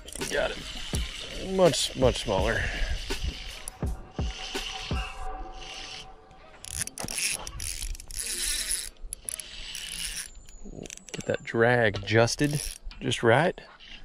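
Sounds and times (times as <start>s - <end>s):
reel drag ratcheting: 0.0s - 3.8s, 6.6s - 11.4s, 12.2s - 12.9s
fishing reel gears whirring: 0.0s - 6.0s, 6.6s - 11.3s, 12.3s - 12.8s.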